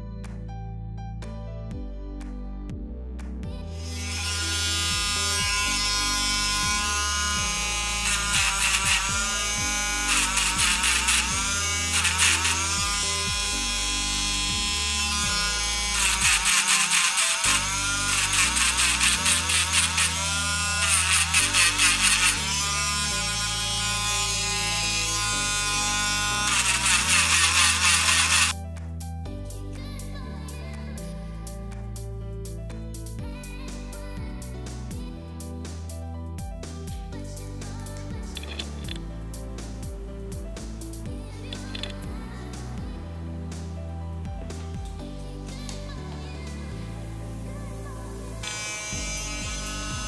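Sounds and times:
background music with steady beat: 0:00.0 - 0:50.0
grinding amber: 0:03.8 - 0:28.6
rotary tool whining: 0:03.8 - 0:28.6, 0:48.4 - 0:50.0.

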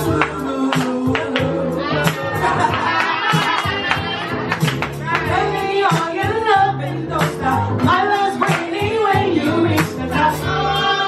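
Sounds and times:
woman singing into microphone: 0:00.0 - 0:04.4, 0:05.0 - 0:11.0
backing music: 0:00.0 - 0:11.0.

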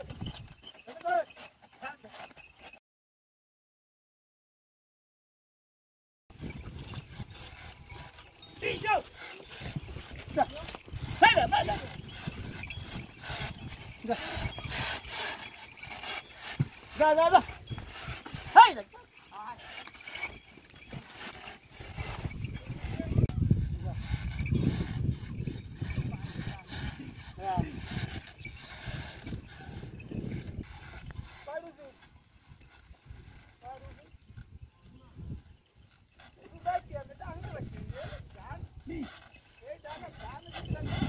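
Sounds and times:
wooden cart rubbing and scraping: 0:00.0 - 0:02.8, 0:06.3 - 0:41.0
man shouting calls: 0:08.6 - 0:09.1, 0:10.4 - 0:11.9, 0:18.4 - 0:19.0.

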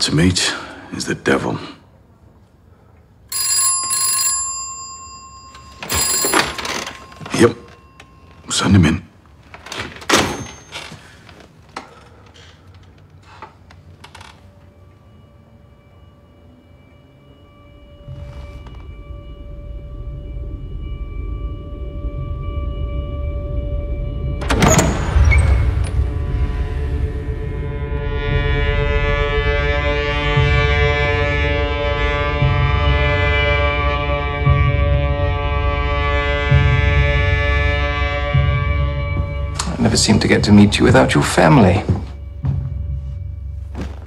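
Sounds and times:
telephone bell ringing: 0:03.3 - 0:08.9
wooden double door opening: 0:05.7 - 0:08.2, 0:09.3 - 0:14.5, 0:24.4 - 0:26.0
dark film score drone: 0:10.8 - 0:44.0.

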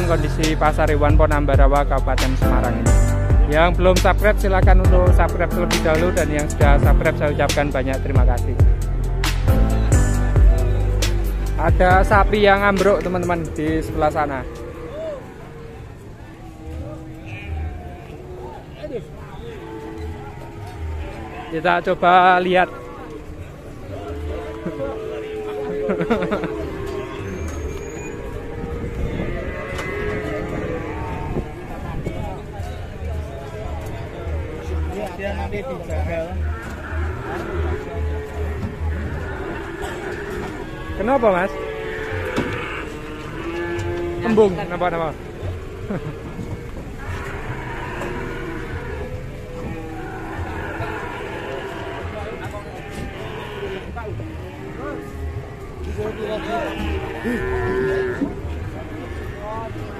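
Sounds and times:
people talking: 0:00.0 - 0:08.6, 0:09.8 - 0:14.4, 0:23.9 - 0:27.4
livestock market hubbub: 0:00.0 - 0:59.9
cattle mooing: 0:09.8 - 0:59.9.

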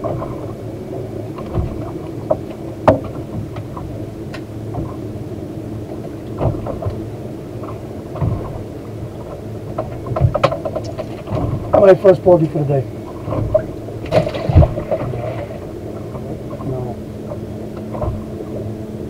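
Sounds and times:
wind and water rumble: 0:00.0 - 0:19.0.

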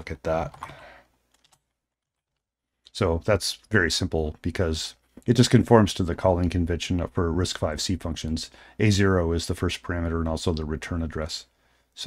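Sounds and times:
faint keyboard keystrokes: 0:00.4 - 0:01.8.

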